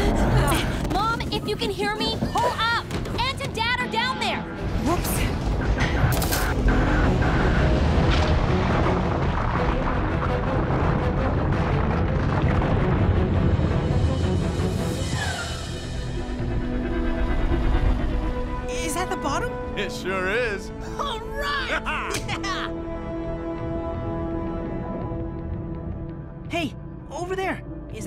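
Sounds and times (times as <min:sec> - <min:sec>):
dramatic music: 0:00.0 - 0:28.0.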